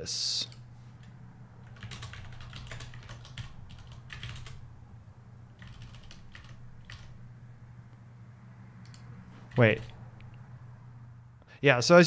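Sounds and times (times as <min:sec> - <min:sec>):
typing on computer keyboard: 0:00.4 - 0:04.7, 0:05.6 - 0:07.2, 0:08.8 - 0:10.0.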